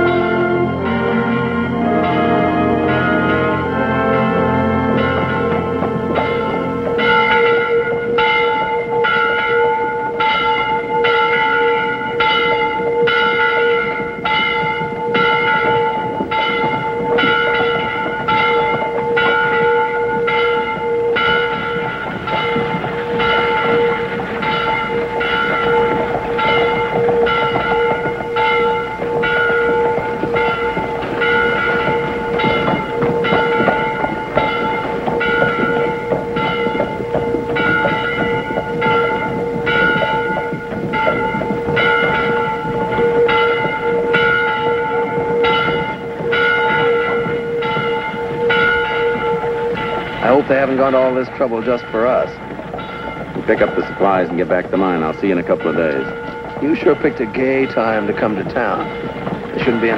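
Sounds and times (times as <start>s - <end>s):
large bell ringing: 0.0s - 59.9s
busy noisy background: 14.0s - 59.9s.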